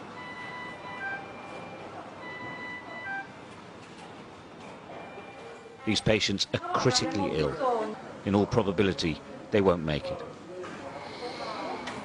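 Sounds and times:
monitor alarm beeping: 0.0 - 3.4, 4.9 - 5.8.

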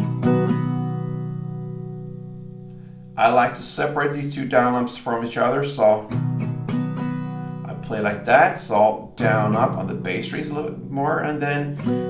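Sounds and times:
acoustic guitar chord ringing: 0.0 - 4.8, 5.7 - 12.0.

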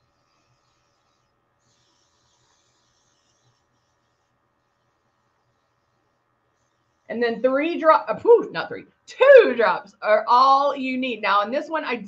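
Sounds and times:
airbrush spraying hiss: 0.0 - 6.0.

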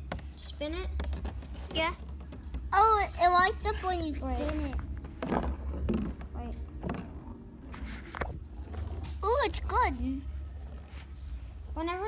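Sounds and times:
knocks and scrapes of plastic: 0.0 - 9.8
steady low hum: 0.0 - 12.0.

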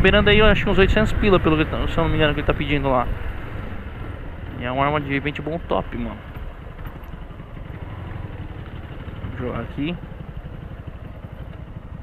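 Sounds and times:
motorcycle engine running at low revs: 0.0 - 12.0.

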